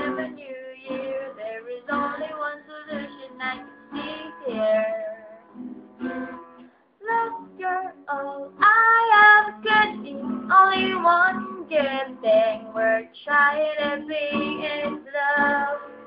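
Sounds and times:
woman singing: 0:00.0 - 0:05.4, 0:06.0 - 0:16.0
acoustic guitar: 0:00.0 - 0:16.0.

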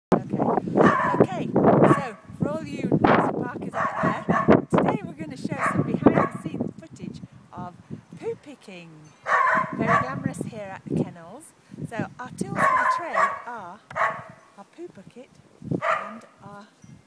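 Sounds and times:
high dog yelps: 0:00.8 - 0:01.2, 0:03.8 - 0:04.6, 0:09.3 - 0:10.2, 0:12.6 - 0:14.4, 0:15.8 - 0:16.3
dogs barking and yipping: 0:00.8 - 0:01.3, 0:03.7 - 0:04.7, 0:05.6 - 0:06.5, 0:09.2 - 0:10.2, 0:12.5 - 0:14.5, 0:15.8 - 0:16.3.

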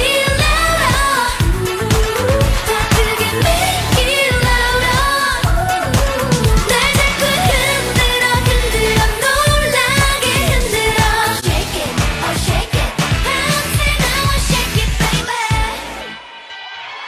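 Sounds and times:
woman singing into microphone: 0:00.0 - 0:15.8
dance beat: 0:00.0 - 0:15.9.

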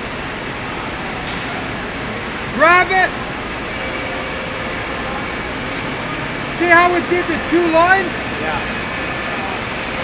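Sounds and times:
machine fans whooshing: 0:00.0 - 0:10.0.

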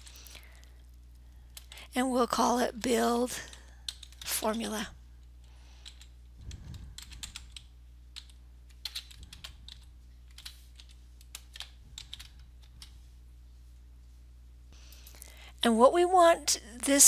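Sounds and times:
faint low hum: 0:00.0 - 0:17.0
computer keyboard typing: 0:02.8 - 0:04.8, 0:05.8 - 0:13.0.

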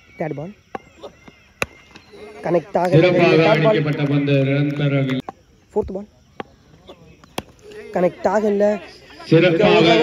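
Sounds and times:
cricket bat hitting ball: 0:00.7 - 0:02.0, 0:07.2 - 0:07.6.

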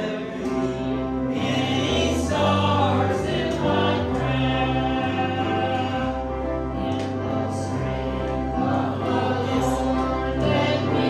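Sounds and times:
choir-like voices: 0:00.0 - 0:11.0
person singing gospel song: 0:00.0 - 0:11.0.

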